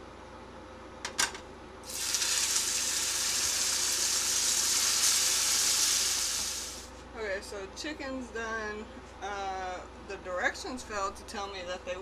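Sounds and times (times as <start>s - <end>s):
chicken sizzling in frying pan: 1.8s - 6.9s.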